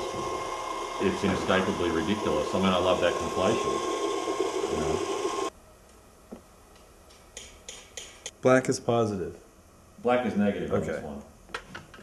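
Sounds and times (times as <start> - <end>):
mechanism whirring: 0.0 - 5.5.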